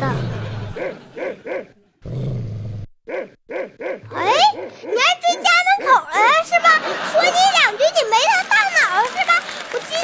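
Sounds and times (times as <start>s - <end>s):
dog growling: 0.0s - 6.1s
dog barking: 3.1s - 6.1s.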